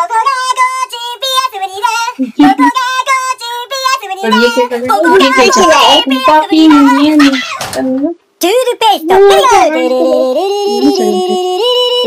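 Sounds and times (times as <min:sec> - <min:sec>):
high child-like voice singing: 0:00.0 - 0:12.0.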